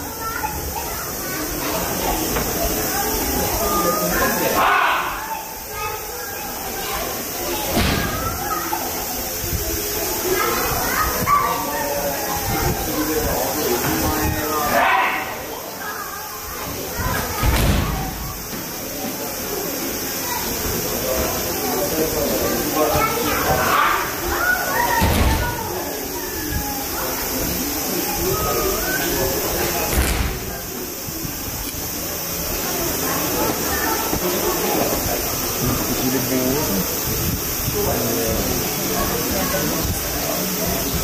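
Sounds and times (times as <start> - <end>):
voices chattering in a hall: 0.0 - 41.0.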